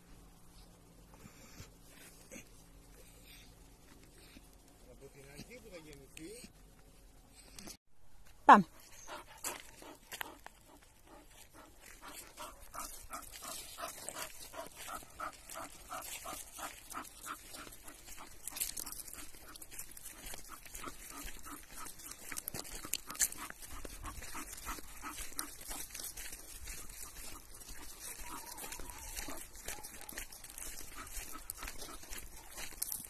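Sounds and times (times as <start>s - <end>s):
dog panting: 8.8s - 33.0s.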